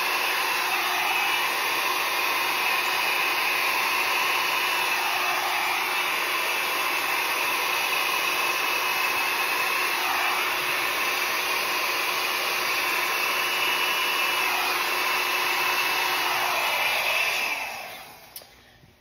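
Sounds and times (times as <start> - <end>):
hair dryer running: 0.0 - 18.6.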